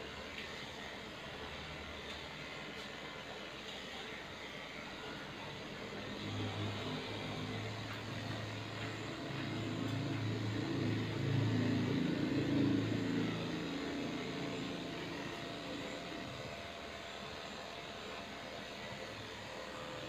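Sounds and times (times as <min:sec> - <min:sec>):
motor humming: 0:00.0 - 0:20.0.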